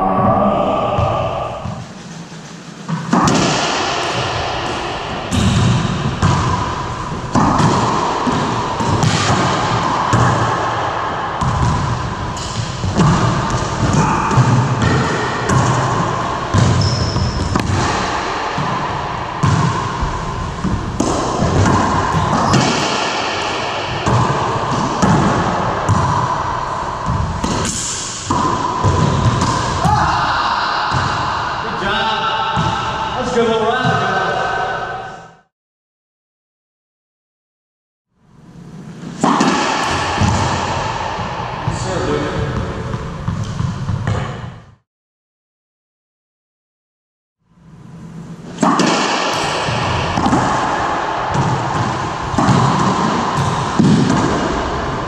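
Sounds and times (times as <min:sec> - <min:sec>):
ball hitting walls and floor: 0:02.8 - 0:31.6, 0:32.5 - 0:33.1, 0:38.9 - 0:44.8, 0:48.4 - 0:55.0
rubber ball smacking off racquet: 0:02.9 - 0:10.6, 0:17.4 - 0:18.8, 0:20.6 - 0:26.4, 0:48.6 - 0:54.7.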